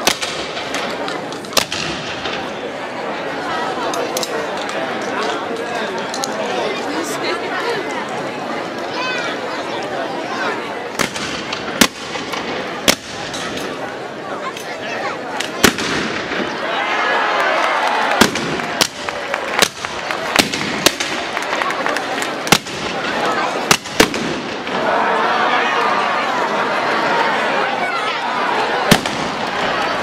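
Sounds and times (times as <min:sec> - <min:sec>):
outdoor crowd chatter: 0:00.0 - 0:30.0
shotgun shots: 0:15.6 - 0:16.5, 0:23.7 - 0:24.6, 0:28.9 - 0:29.4.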